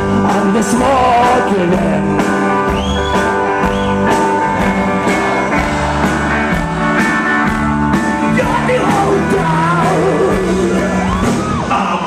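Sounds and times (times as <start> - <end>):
steady drum beat: 0.0 - 11.7
electric guitar chords: 0.0 - 12.0.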